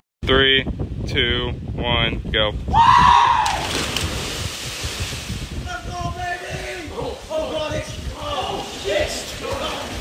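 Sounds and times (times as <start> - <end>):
bodies splashing into water: 3.4 - 5.6.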